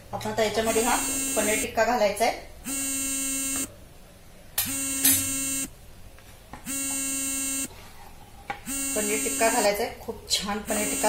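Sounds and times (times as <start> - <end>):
electronic buzzer: 0.6 - 1.7, 2.6 - 3.7, 4.6 - 5.7, 6.7 - 7.7, 8.7 - 9.7, 10.7 - 11.0.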